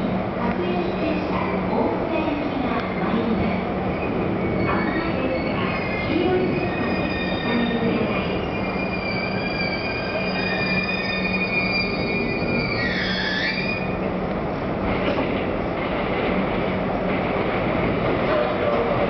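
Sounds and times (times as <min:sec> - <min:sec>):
electric train braking: 0:04.0 - 0:14.0.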